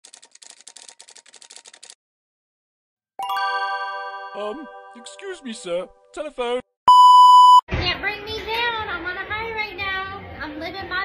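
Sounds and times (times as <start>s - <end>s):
rapid keyboard typing clicks: 0.0s - 2.0s.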